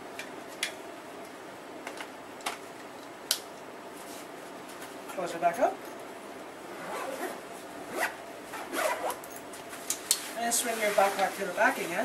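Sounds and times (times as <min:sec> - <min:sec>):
zipper being zipped shut: 0:06.6 - 0:09.3.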